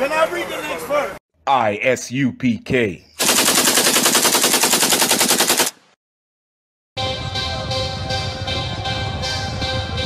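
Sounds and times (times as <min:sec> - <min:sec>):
automatic gunfire rattle: 0:03.2 - 0:05.8.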